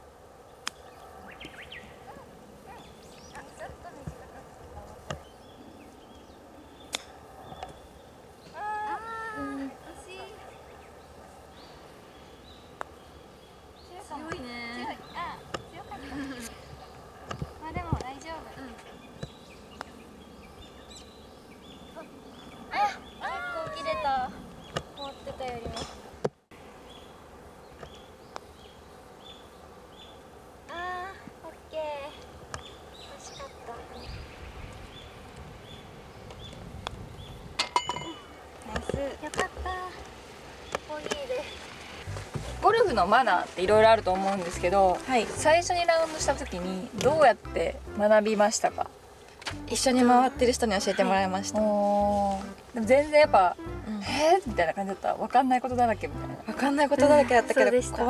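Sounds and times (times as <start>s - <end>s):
faint background hiss: 0.0s - 58.0s
faint birds chirping: 0.0s - 58.0s.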